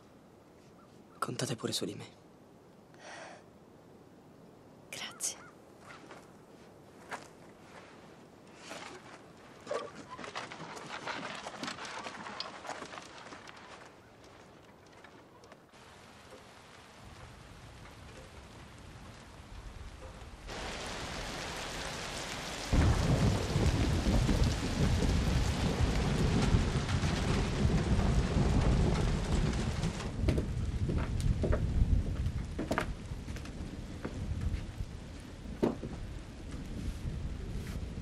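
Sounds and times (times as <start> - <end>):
rain: 1.7 - 5.2, 8.6 - 38.0
thunder rumble: 15.8 - 38.0.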